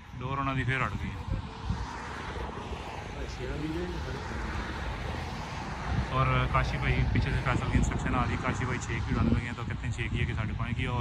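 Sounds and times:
steady rushing with low rumble: 0:00.0 - 0:11.0.

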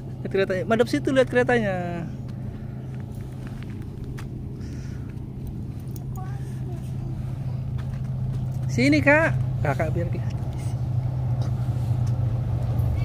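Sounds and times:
diesel locomotive engine drone: 0:00.0 - 0:13.0.

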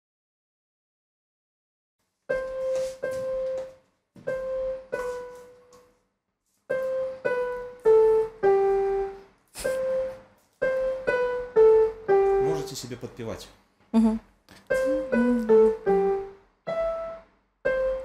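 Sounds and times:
electronic keyboard piano notes: 0:02.3 - 0:06.0, 0:06.7 - 0:13.4, 0:14.7 - 0:18.0.

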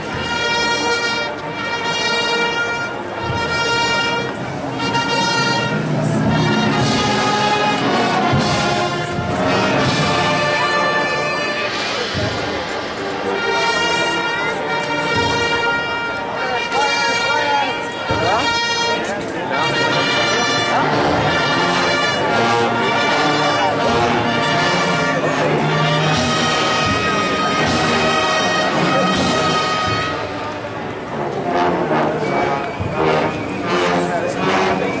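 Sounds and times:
brass band playing funeral march: 0:00.0 - 0:35.0
people talking: 0:00.0 - 0:35.0.

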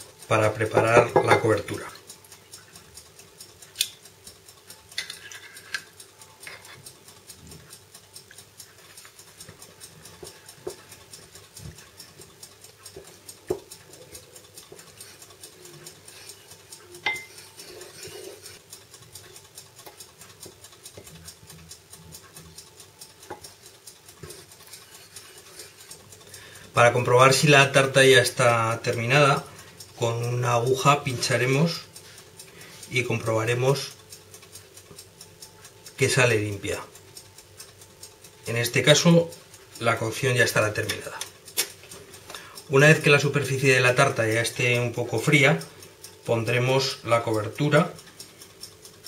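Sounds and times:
faint steady hum: 0:00.0 - 0:49.0
spoon knocking against bowl: 0:17.0 - 0:17.3.

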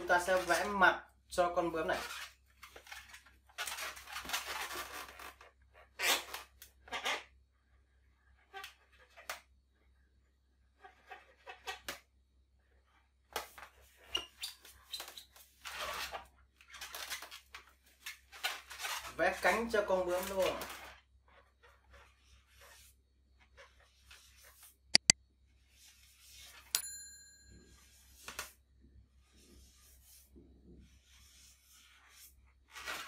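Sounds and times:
balloons rubbing and scraping: 0:01.7 - 0:07.4, 0:10.7 - 0:12.0, 0:13.5 - 0:26.7
marker scratching on balloon: 0:01.9 - 0:09.4, 0:10.7 - 0:12.0, 0:12.8 - 0:16.3, 0:18.0 - 0:26.7, 0:29.2 - 0:33.0.

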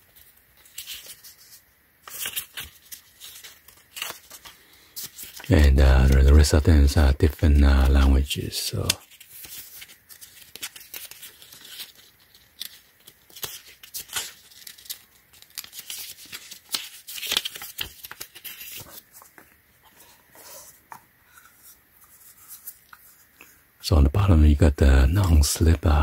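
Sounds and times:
paper pages rustling: 0:00.0 - 0:23.6.

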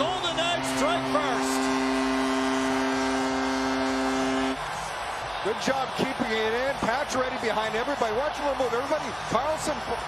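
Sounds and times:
arena goal horn low tone: 0:00.0 - 0:04.6
crowd cheering and clapping: 0:00.0 - 0:10.0.

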